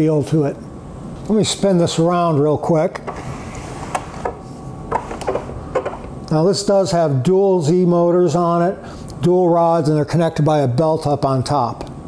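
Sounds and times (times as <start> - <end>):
printer base scraping on wooden bench: 3.1 - 6.0.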